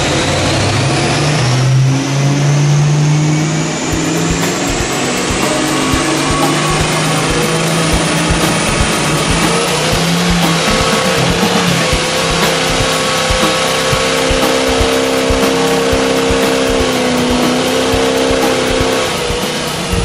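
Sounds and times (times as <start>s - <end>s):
engine running hard: 0.0s - 20.0s
rising high whine: 0.0s - 20.0s.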